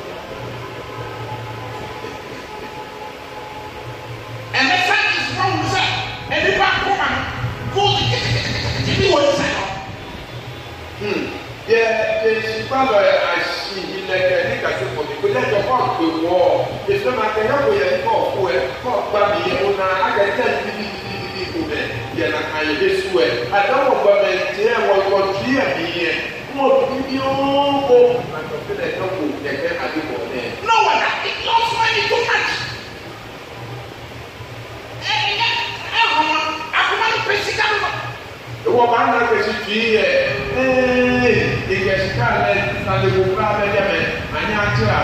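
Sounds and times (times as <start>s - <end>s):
steady hiss: 0.0s - 45.0s
man speaking over pa system: 4.5s - 10.0s, 11.0s - 32.9s, 35.0s - 45.0s.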